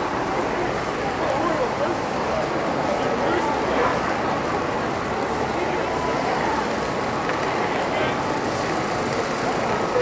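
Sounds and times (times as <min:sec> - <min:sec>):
indistinct chatter: 0:00.0 - 0:10.0
traffic hum: 0:00.0 - 0:10.0.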